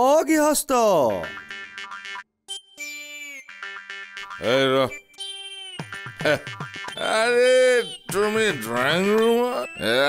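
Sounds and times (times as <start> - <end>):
comic plucked background music: 1.1 - 10.0.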